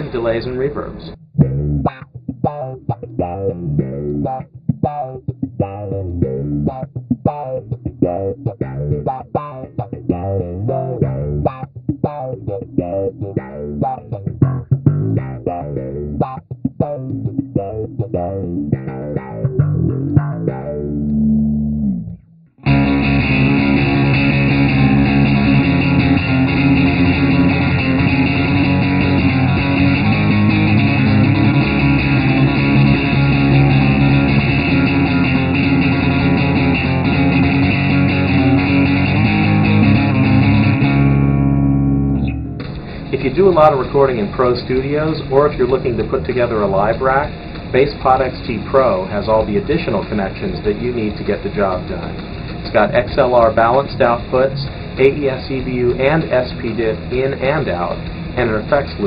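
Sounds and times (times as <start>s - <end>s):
electric bass guitar with effects: 1.0s - 59.0s.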